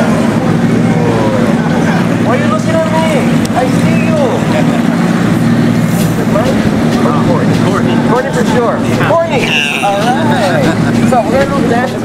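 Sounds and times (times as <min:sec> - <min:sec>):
distant overlapping voices: 0:00.0 - 0:12.0
low motor hum: 0:00.0 - 0:12.0.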